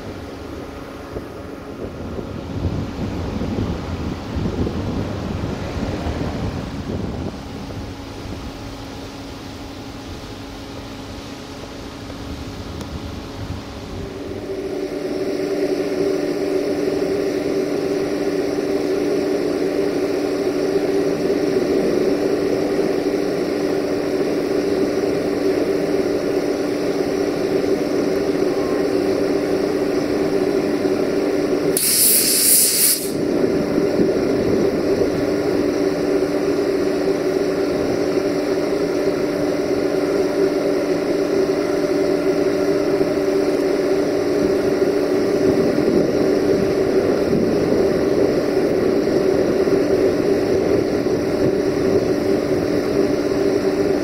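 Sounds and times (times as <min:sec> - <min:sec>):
electric locomotive humming: 0:00.0 - 0:54.0
loud hiss: 0:31.7 - 0:33.2.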